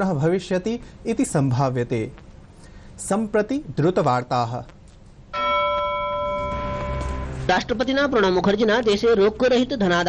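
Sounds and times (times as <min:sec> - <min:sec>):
man speaking: 0:00.0 - 0:02.2, 0:07.4 - 0:10.0
bell-like broadcast chime: 0:05.4 - 0:07.8.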